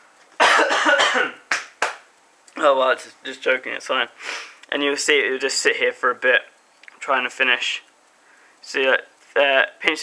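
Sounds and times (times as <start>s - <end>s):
man coughing: 0.4s - 1.4s.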